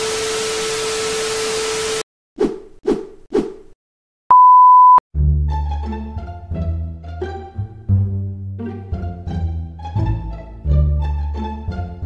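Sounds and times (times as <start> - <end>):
high beep: 4.3 - 5.0.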